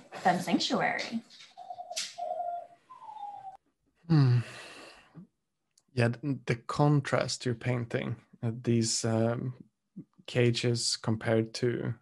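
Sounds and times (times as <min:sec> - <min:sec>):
bird-like whistled call: 0:02.2 - 0:03.6.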